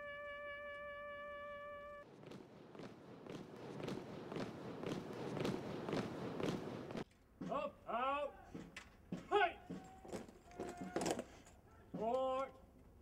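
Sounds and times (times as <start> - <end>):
trumpet note: 0.0 - 2.1
marching footfalls on pavement: 2.0 - 7.6.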